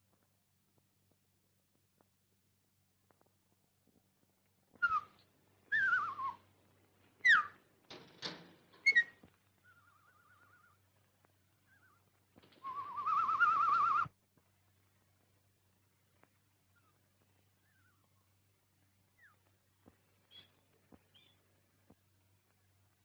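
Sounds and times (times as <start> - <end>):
bird-like whistles and chirps: 4.8 - 6.4, 7.2 - 7.6, 8.8 - 10.8, 11.6 - 12.0, 12.6 - 14.1, 17.6 - 18.3, 19.2 - 19.5, 20.2 - 21.4.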